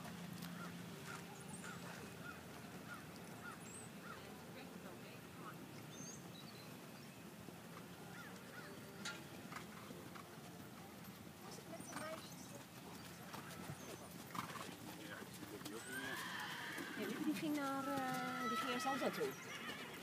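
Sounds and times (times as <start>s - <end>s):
horse whinnying: 15.6s - 20.0s.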